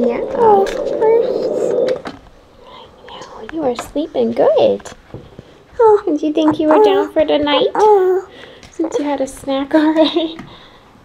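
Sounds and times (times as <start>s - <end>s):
toddler sing-song voice: 5.8s - 9.1s
woman whispering: 6.4s - 7.9s.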